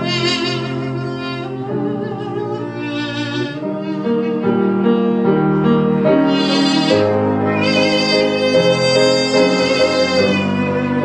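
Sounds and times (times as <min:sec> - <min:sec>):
cello: 0:00.0 - 0:11.0
double-reed pipe melody: 0:00.0 - 0:11.0
piano accompaniment: 0:00.0 - 0:11.0.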